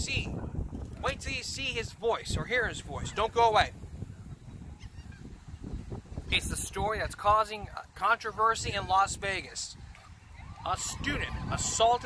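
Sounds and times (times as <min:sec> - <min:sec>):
wind rumbling on microphone: 0:00.0 - 0:12.0
faint bird call: 0:04.1 - 0:05.4.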